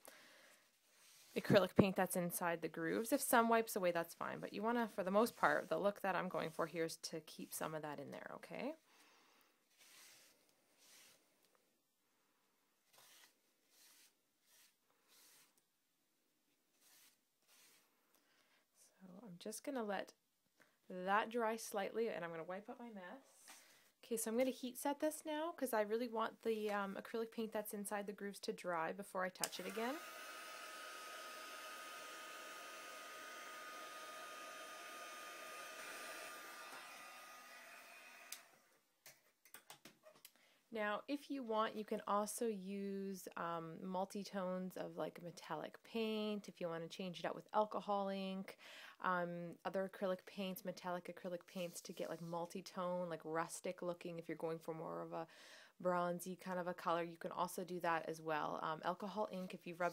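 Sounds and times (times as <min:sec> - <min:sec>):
heat tool blowing hot air: 0:29.6 - 0:38.4.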